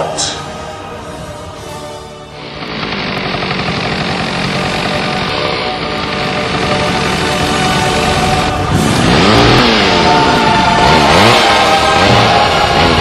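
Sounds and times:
loud music: 0.0s - 13.0s
chainsaw engine revving: 2.4s - 13.0s.

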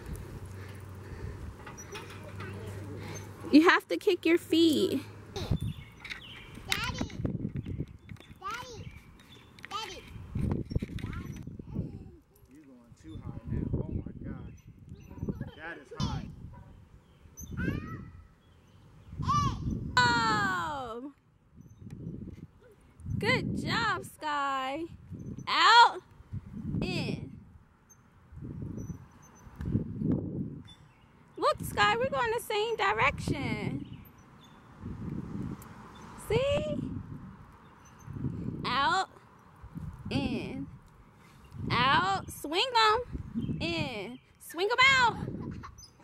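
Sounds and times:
swing squeaking: 0.7s - 3.6s, 17.0s - 19.8s, 27.8s - 29.6s, 33.9s - 34.8s, 37.7s - 38.4s, 44.8s - 46.0s
wind rushing over microphone: 5.4s - 9.3s, 10.1s - 12.2s, 12.9s - 25.6s, 26.2s - 27.7s, 28.3s - 30.8s, 31.4s - 34.1s, 34.7s - 39.0s, 39.6s - 44.2s, 44.8s - 45.8s.

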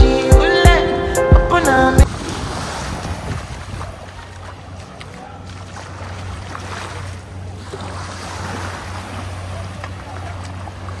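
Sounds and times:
calm surf: 0.1s - 11.0s
wind on microphone: 1.8s - 4.2s.

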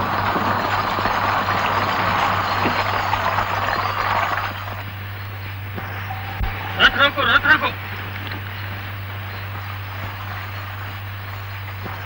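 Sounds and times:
cart wheels rattling: 0.0s - 5.2s, 5.8s - 12.0s
steady low hum: 0.0s - 12.0s
high wavering cry: 5.8s - 7.8s.

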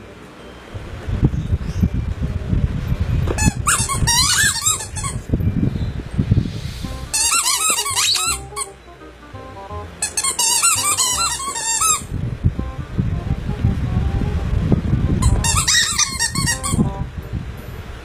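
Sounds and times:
squeaky toy squeaking: 3.4s - 5.2s, 7.0s - 8.8s, 10.0s - 12.1s, 15.2s - 17.0s.

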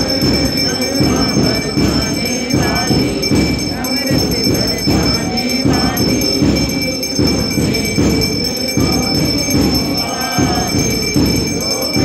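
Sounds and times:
bells ringing: 0.0s - 12.0s
steady low drum beat: 0.0s - 12.0s.

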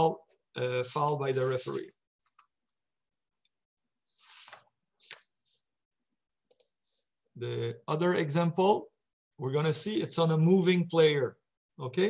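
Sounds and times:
computer mouse clicks: 6.5s - 6.8s.

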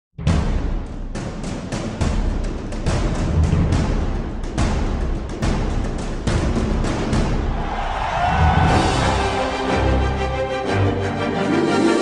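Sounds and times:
theme music with booming drums: 0.2s - 12.0s.

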